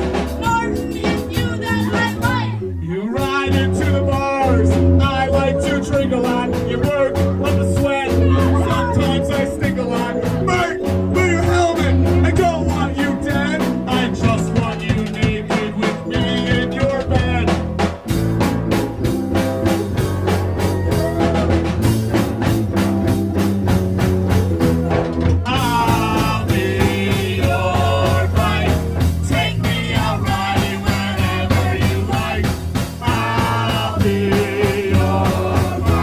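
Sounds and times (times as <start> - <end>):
bass: 0.0 - 36.0
drum beat: 0.0 - 36.0.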